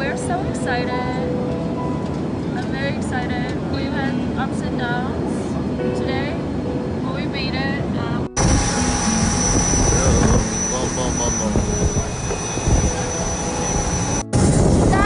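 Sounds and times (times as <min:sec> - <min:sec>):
voices: 0:02.6 - 0:14.2
jet engine rushing and whining: 0:08.4 - 0:15.0.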